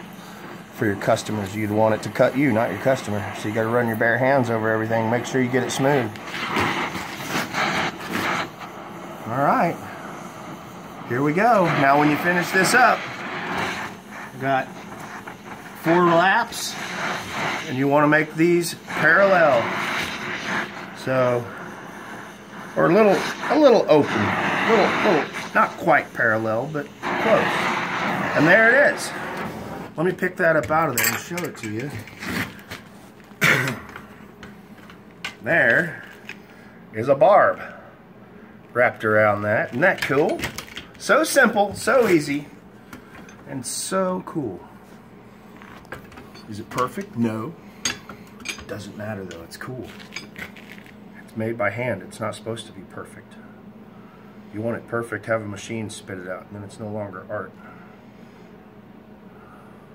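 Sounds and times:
torch flame hissing on steel: 0.0s - 34.5s, 35.1s - 37.9s, 38.7s - 53.2s
man coughing: 33.4s - 34.0s.

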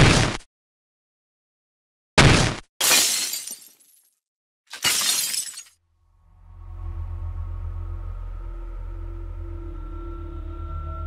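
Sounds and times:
glass smashing: 2.8s - 4.1s, 4.7s - 5.8s.

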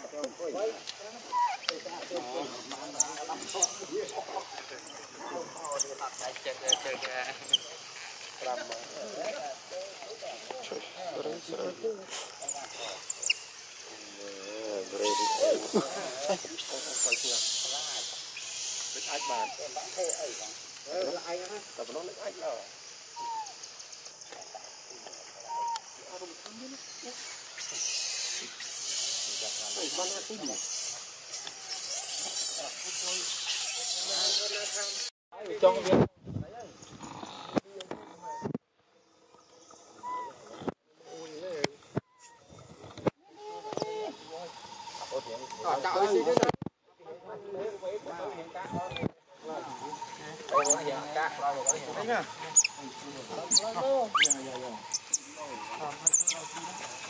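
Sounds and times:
steady high hiss: 0.0s - 37.9s, 39.0s - 46.4s, 47.0s - 57.0s
monkey coo: 1.2s - 1.7s, 14.0s - 17.2s, 19.0s - 20.2s, 23.2s - 23.6s, 25.4s - 25.8s, 37.0s - 38.5s, 40.0s - 40.6s, 49.7s - 57.0s
monkeys squealing: 1.2s - 1.7s, 2.3s - 8.2s, 12.3s - 13.5s, 14.9s - 20.6s, 23.1s - 23.6s, 25.5s - 25.8s, 27.1s - 35.1s, 40.0s - 40.4s, 49.7s - 57.0s
baby monkey crying: 15.0s - 15.6s, 50.5s - 50.9s, 53.5s - 56.6s.

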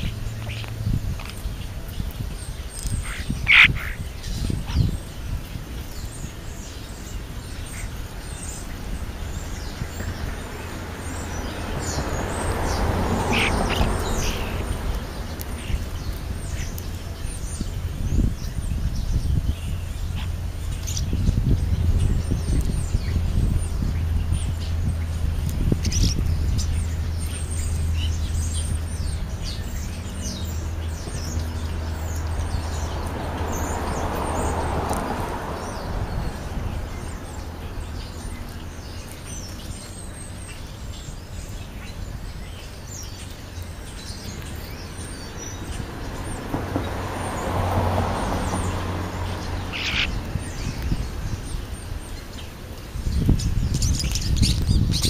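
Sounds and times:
starlings chirping and clicking: 0.0s - 55.0s.

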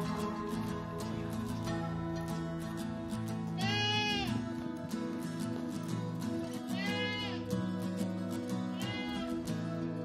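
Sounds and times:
background music with held notes: 0.0s - 10.0s
animal bleating: 3.5s - 4.4s, 6.7s - 7.5s, 8.7s - 9.4s.

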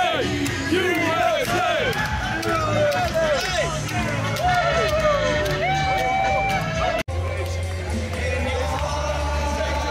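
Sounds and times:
music: 0.0s - 9.9s
street crowd cheering: 0.0s - 9.9s
voices singing along: 0.0s - 9.9s.

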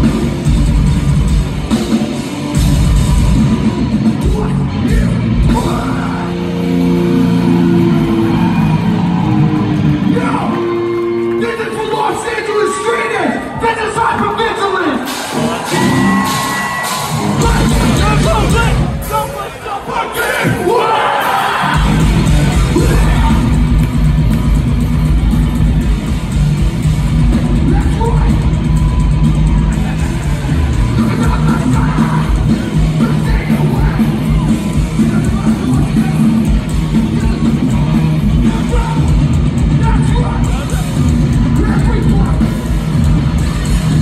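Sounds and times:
punk band playing electric guitars: 0.0s - 14.3s, 15.0s - 19.6s, 20.2s - 44.0s
drums: 0.0s - 44.0s.

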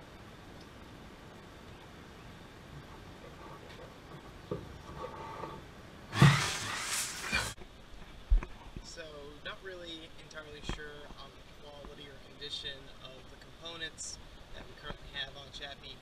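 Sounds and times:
paper pages rustling: 6.2s - 7.6s.

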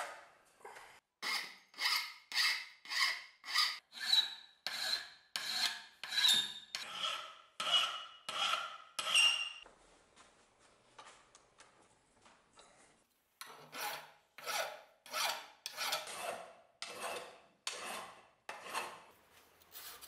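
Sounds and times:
hand file filing steel: 1.2s - 9.5s, 13.4s - 19.1s.

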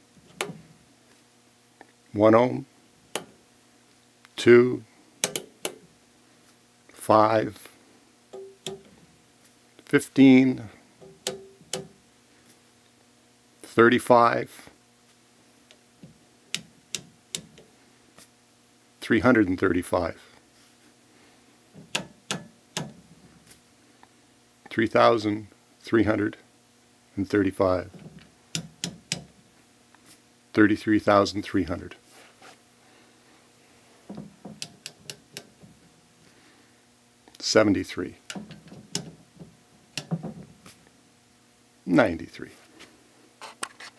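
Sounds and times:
rotary switch clicking: 5.2s - 5.8s.

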